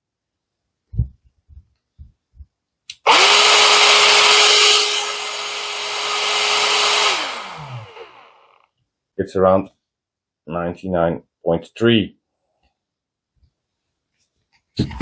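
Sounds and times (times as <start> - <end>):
air pump running with whine: 3.0 - 8.6.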